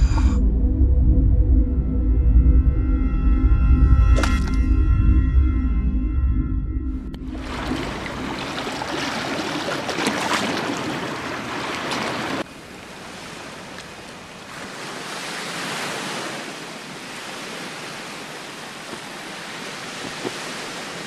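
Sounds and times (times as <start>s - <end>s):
wind: 0.0s - 21.0s
surf on rocky shore: 7.4s - 21.0s.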